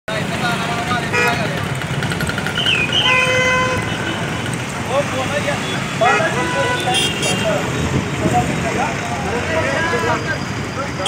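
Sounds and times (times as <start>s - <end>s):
traffic noise: 0.1s - 11.0s
voices: 0.1s - 11.0s
vehicle horn tooting: 3.0s - 4.2s, 6.0s - 7.6s.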